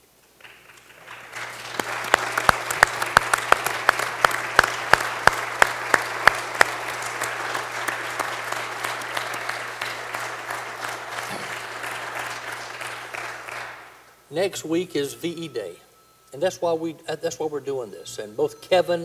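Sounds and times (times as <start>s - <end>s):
person clapping close to microphone: 0.4s - 14.0s
audience applauding: 0.4s - 14.2s.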